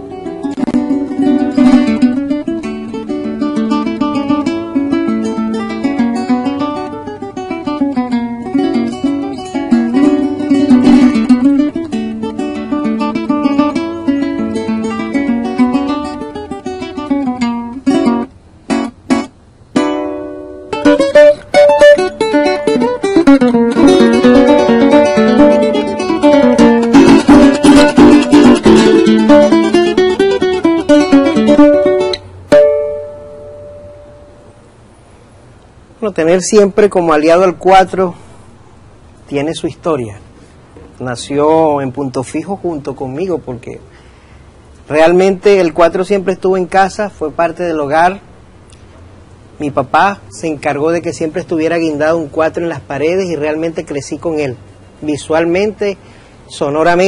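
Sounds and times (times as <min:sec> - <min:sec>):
sharp guitar chords: 0:00.0 - 0:34.8
small guitar picked melody: 0:00.0 - 0:35.0.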